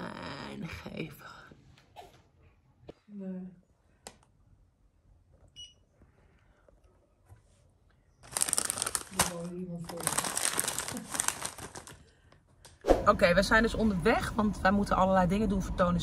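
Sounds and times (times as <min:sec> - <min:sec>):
loud crinkling and crackling: 0:08.2 - 0:12.1.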